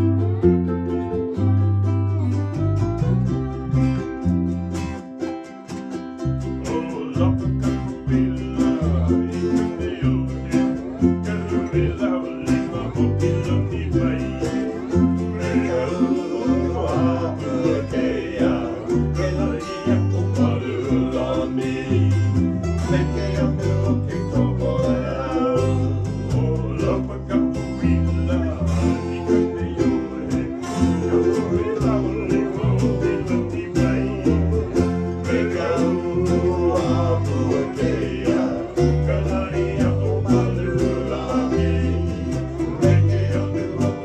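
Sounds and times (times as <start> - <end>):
electric bass plucking: 0.0 - 44.0
strummed ukuleles and guitar: 0.0 - 44.0.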